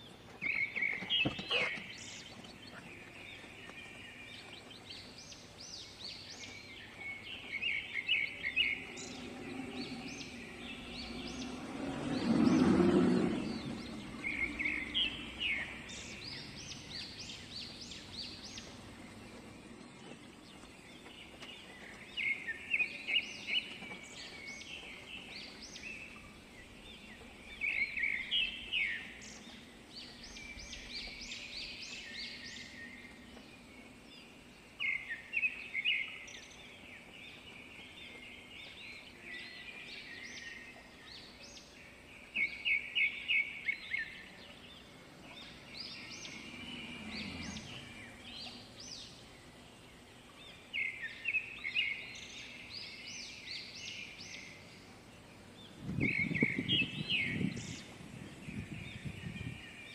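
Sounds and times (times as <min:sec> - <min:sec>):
background hum: 0:00.0 - 0:59.9
birds chirping: 0:00.0 - 0:59.9.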